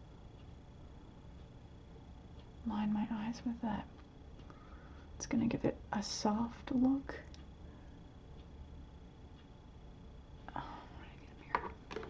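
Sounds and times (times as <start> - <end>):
woman whispering: 2.6 - 3.9, 10.4 - 11.6.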